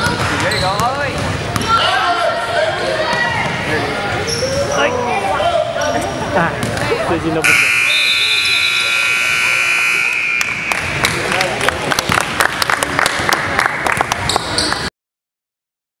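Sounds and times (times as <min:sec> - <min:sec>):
scoreboard buzzer: 0:07.4 - 0:10.6
spectators clapping: 0:10.4 - 0:14.9.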